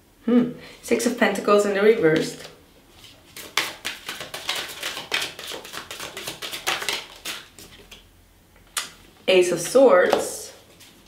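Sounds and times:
cards being shuffled: 2.2 - 8.0.

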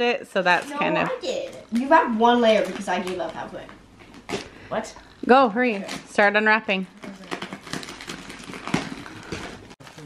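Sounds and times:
wrapping paper tearing and crinkling: 6.9 - 10.0.

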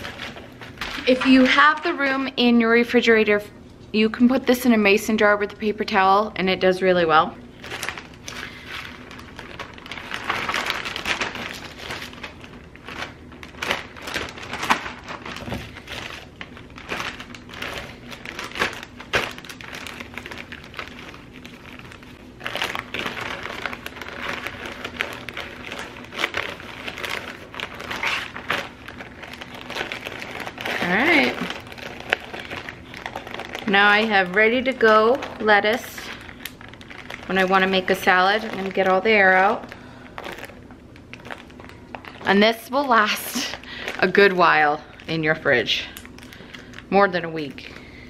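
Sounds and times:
plastic bag crinkling: 0.0 - 3.1, 6.9 - 48.0.

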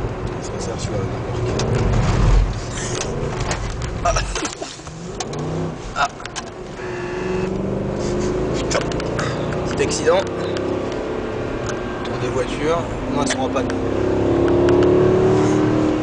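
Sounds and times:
car engine accelerating hard: 0.0 - 16.0
tyre and road noise: 0.0 - 16.0.

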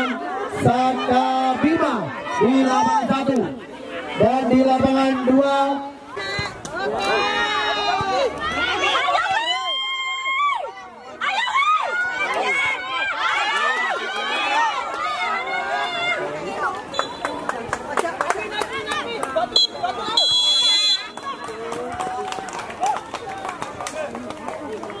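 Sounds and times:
children and adults shouting: 6.2 - 16.9
referee's whistle: 16.9 - 17.4, 19.6 - 21.3.

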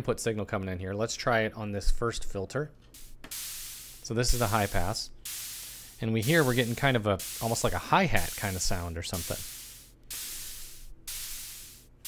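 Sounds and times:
synthesizer white noise hiss bursts: 3.0 - 12.0.

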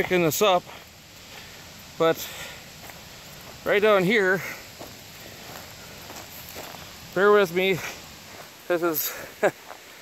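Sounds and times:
footsteps on dirt trail: 0.0 - 10.0
steady background hiss: 0.0 - 10.0.

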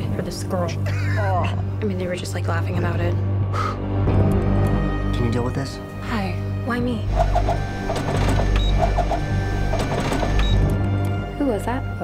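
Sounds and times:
printer hum and clatter: 7.1 - 10.6
printer paper feed whine: 7.2 - 10.6.

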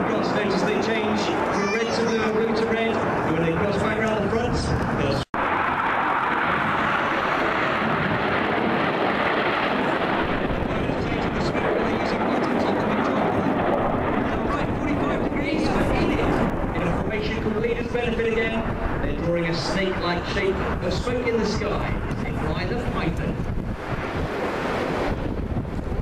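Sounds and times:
jets passing low: 0.0 - 26.0.

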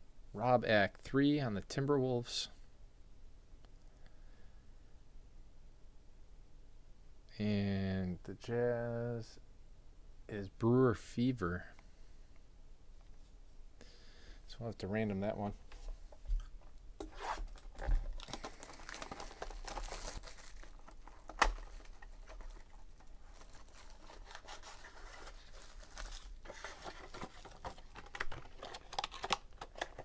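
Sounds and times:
plastic shrink-wrap tearing: 17.1 - 30.0.

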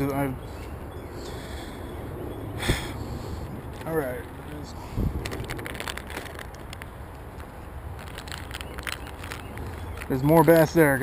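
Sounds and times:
plastic bag crinkling: 5.0 - 10.8.

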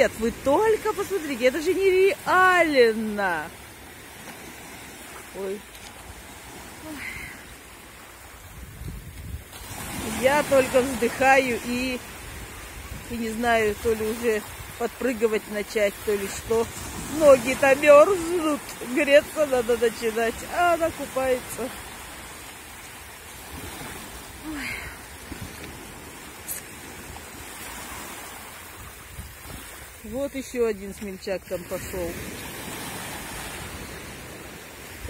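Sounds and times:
small waves breaking on beach: 0.0 - 35.0
wind rumbling on microphone: 7.9 - 15.0, 15.8 - 30.7.

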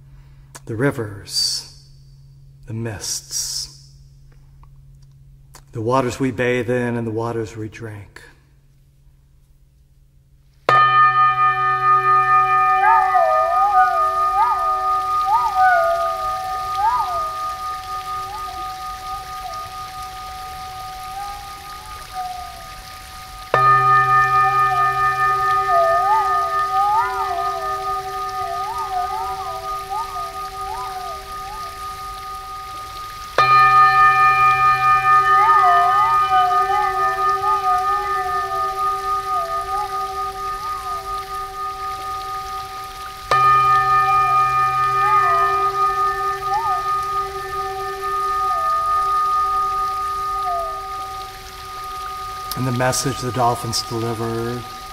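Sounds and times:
crystal singing bowls ringing: 0.0 - 7.6, 10.6 - 54.9
wavering gliding tone: 11.0 - 54.9.

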